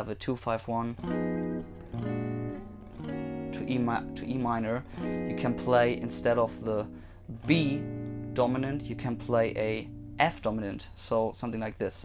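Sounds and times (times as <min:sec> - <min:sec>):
electric guitar chords ringing: 0:01.0 - 0:10.8.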